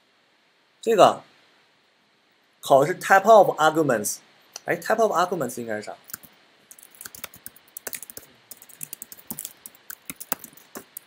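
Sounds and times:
computer keyboard typing: 0:06.1 - 0:11.0.

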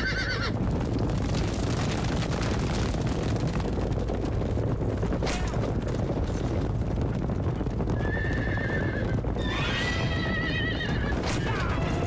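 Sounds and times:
horse whinnies: 0:00.0 - 0:00.6, 0:08.0 - 0:12.0
horses galloping on turf: 0:00.0 - 0:12.0.

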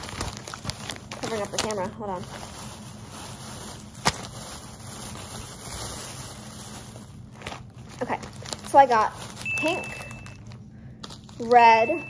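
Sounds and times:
plastic bag rustling: 0:00.0 - 0:12.0.

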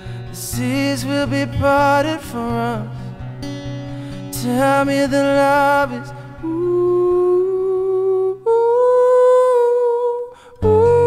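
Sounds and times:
man singing wordless notes: 0:00.0 - 0:03.1, 0:04.2 - 0:11.0
acoustic guitar picking: 0:00.0 - 0:08.4, 0:10.6 - 0:11.0.

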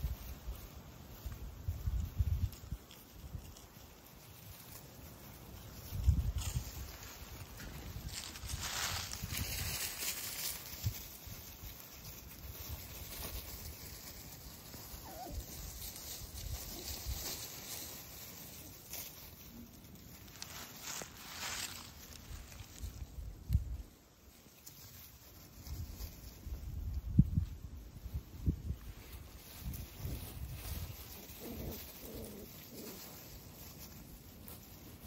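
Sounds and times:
dry leaves rustling and crackling: 0:00.0 - 0:35.0
footsteps in leaves: 0:00.0 - 0:35.0.

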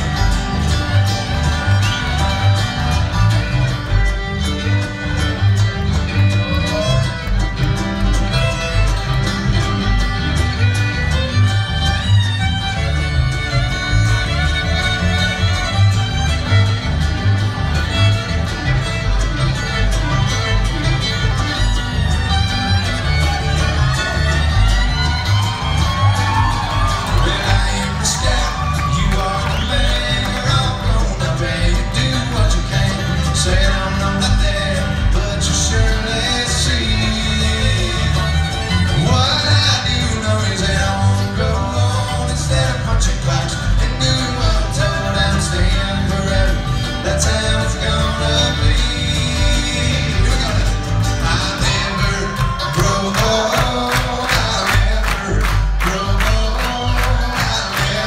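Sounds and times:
bluegrass string band playing: 0:00.0 - 0:58.0
fiddle: 0:00.0 - 0:58.0
upright bass: 0:00.0 - 0:58.0.

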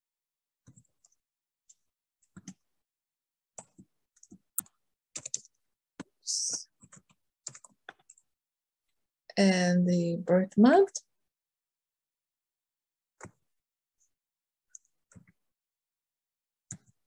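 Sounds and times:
keyboard keystrokes: 0:03.6 - 0:05.5.

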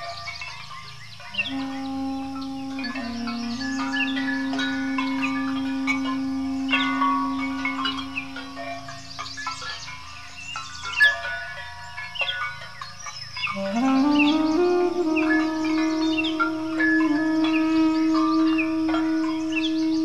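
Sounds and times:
birds chirping: 0:00.0 - 0:20.0
ringing bell-like chimes: 0:00.0 - 0:20.0
duduk long low note: 0:01.4 - 0:08.9, 0:13.5 - 0:20.0.

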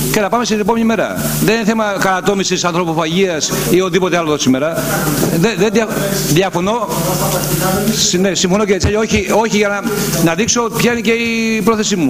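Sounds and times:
men talking: 0:03.9 - 0:12.0.

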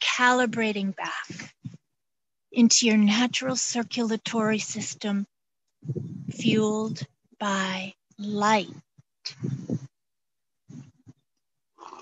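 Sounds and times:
horse snorting: 0:11.8 - 0:12.0.

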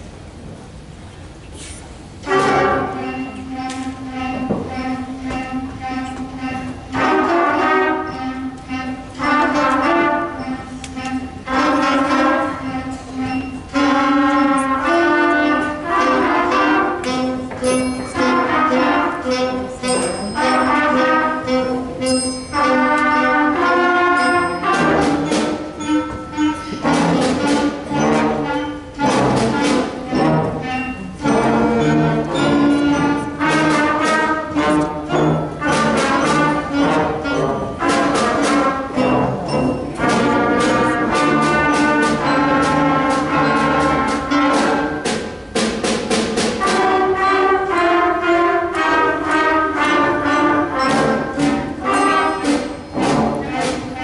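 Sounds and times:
concert band playing: 0:01.6 - 0:54.0.

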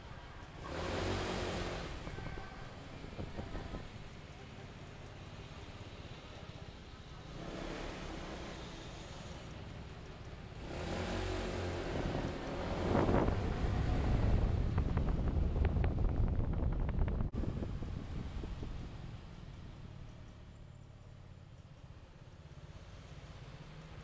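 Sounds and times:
road vehicle driving past: 0:00.0 - 0:15.6.

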